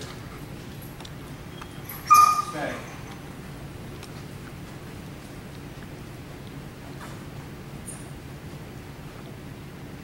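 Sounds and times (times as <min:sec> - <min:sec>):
dog whining: 0:01.5 - 0:03.2.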